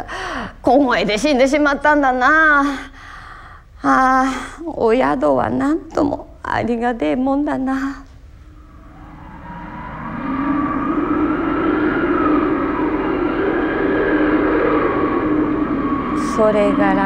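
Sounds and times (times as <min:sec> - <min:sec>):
howling blizzard wind: 0:08.1 - 0:17.0.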